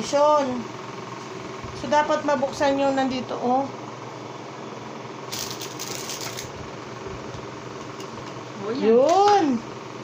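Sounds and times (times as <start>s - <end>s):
steady background hum: 0.0s - 10.0s
compact and packaging rattling: 5.3s - 6.5s.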